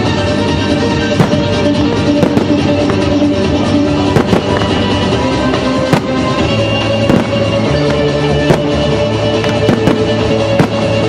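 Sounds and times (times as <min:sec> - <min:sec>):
musical soundtrack: 0:00.0 - 0:11.0
firework shells bursting: 0:05.8 - 0:10.9.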